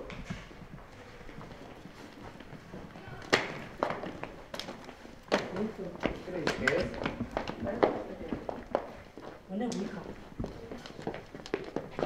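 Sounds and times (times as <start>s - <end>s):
footsteps on stage floor: 0.0s - 12.0s.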